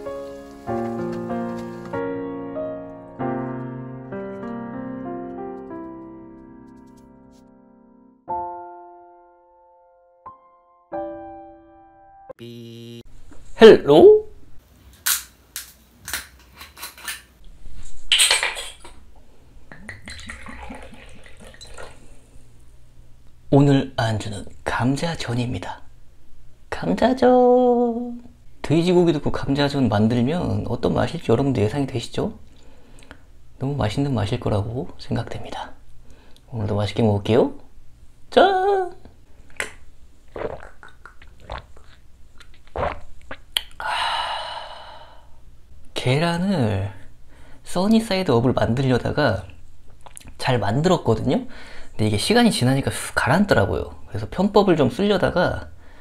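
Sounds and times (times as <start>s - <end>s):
liquid glugging from glass bottle: 19.7s - 22.1s, 40.3s - 43.5s
man's breathy exhale: 43.8s - 45.4s.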